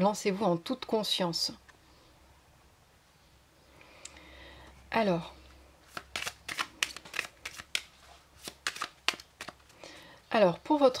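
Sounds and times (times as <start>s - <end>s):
cards being shuffled: 5.8s - 9.8s.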